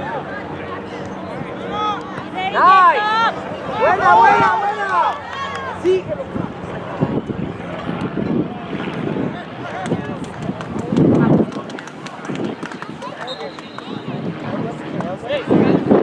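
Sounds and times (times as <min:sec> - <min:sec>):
people calling out and talking: 0:00.0 - 0:15.9
loud shout: 0:01.7 - 0:06.0.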